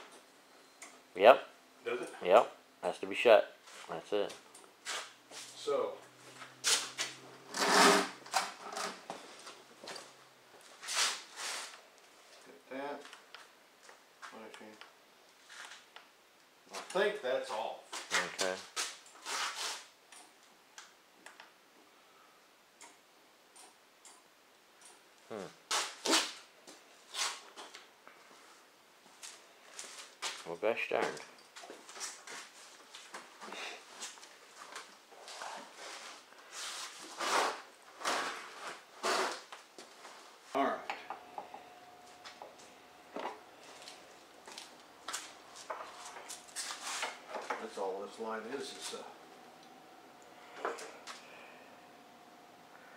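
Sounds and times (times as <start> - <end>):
faint steady whine: 0.0 - 17.9, 19.8 - 25.7, 26.4 - 52.9.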